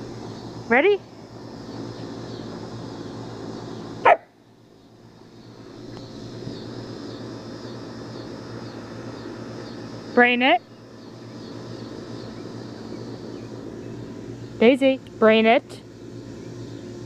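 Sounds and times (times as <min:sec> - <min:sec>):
steady low hum: 0:00.0 - 0:17.0
puppy barking: 0:04.0 - 0:04.4.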